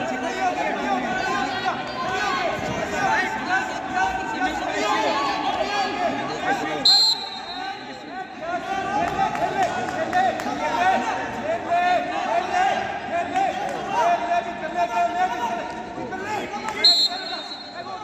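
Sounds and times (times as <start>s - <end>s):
many voices talking and calling out: 0.0s - 18.0s.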